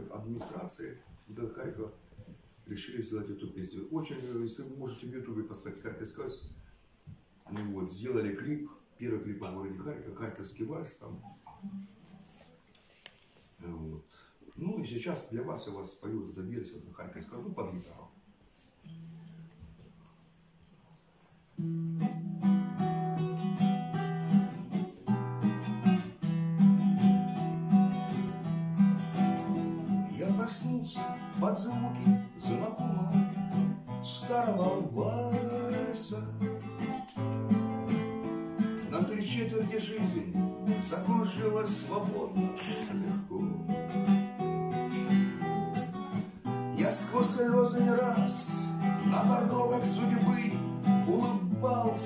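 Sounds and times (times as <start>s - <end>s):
acoustic guitar waltz chords: 9.2s - 13.4s, 18.3s - 52.0s
person singing: 30.1s - 37.2s, 46.8s - 52.0s.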